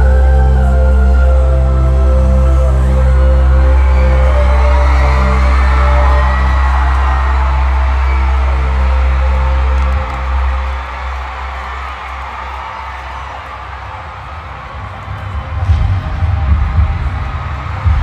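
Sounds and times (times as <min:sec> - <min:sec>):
low synth drone: 0:00.0 - 0:10.8
crowd noise with whoops: 0:00.0 - 0:18.0
pulsing bass beat: 0:14.8 - 0:18.0.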